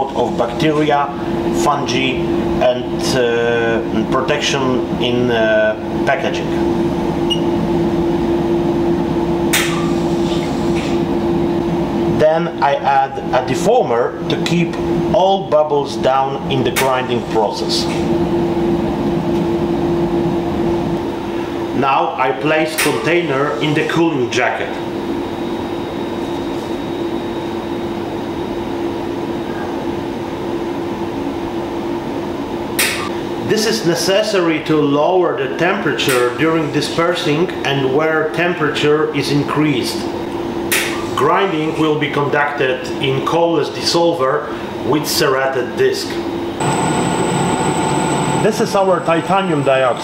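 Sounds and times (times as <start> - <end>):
mechanical hum of equipment: 0.0 - 50.0.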